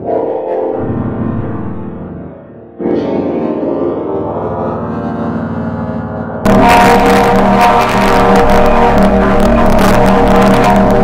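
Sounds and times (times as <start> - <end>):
distorted droning logo music: 0.4 - 11.0.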